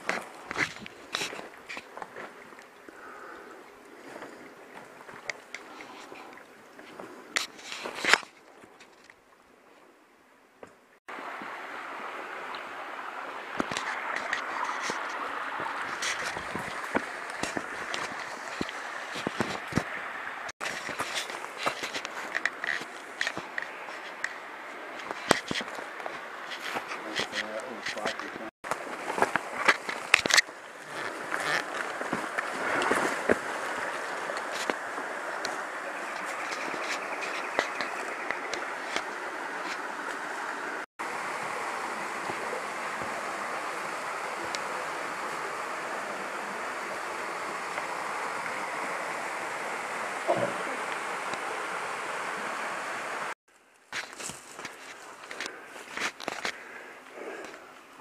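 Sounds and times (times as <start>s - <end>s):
steady rushing water: 0.0s - 58.0s
footsteps on rocks: 13.9s - 19.9s, 20.6s - 24.2s, 25.0s - 39.1s, 53.9s - 56.6s.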